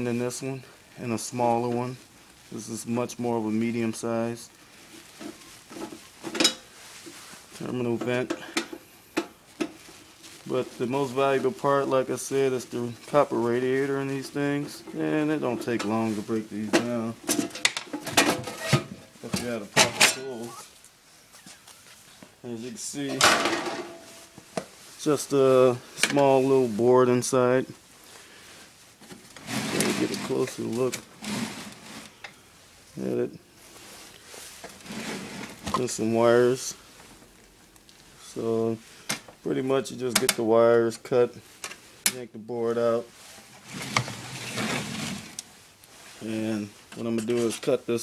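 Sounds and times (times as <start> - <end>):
metal scraping and clattering: 14.6 - 20.5, 29.4 - 32.1, 43.5 - 45.4.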